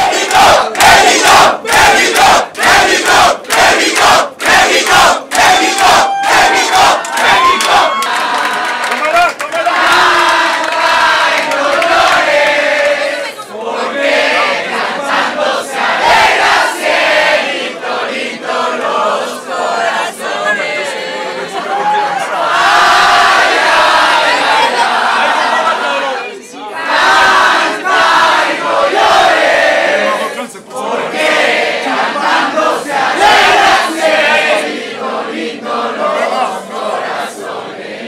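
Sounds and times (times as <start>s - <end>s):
crowd rhythmic shouting: 0.0s - 38.0s
crowd cheering and shouting: 5.2s - 11.4s, 20.3s - 27.4s.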